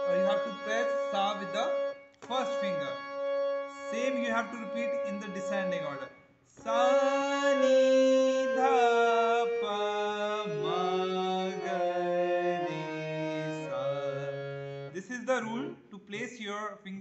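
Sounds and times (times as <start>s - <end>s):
harmonium descending scale: 0.0s - 15.8s
man singing: 6.6s - 12.8s.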